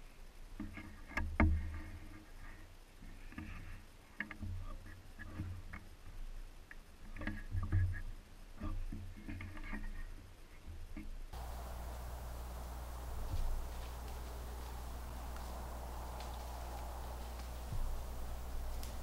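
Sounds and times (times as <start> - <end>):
clicks creaks and rustles: 11.4 - 19.0
low thuds: 11.4 - 19.0.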